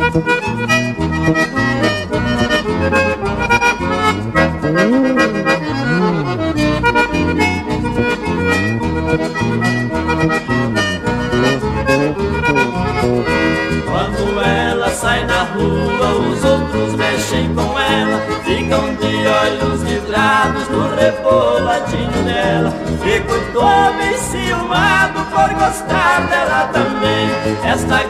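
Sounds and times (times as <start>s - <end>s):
accordion melody: 0.0s - 28.0s
bass line: 0.0s - 28.0s.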